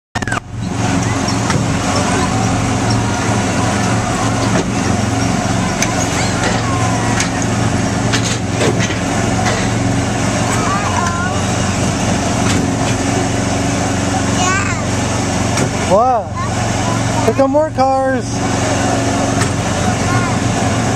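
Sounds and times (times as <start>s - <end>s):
voice: 10.4s - 11.6s, 19.6s - 20.6s.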